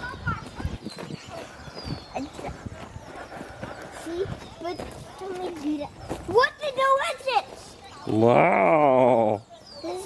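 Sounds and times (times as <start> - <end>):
footsteps on wood-chip mulch: 0.0 - 8.2.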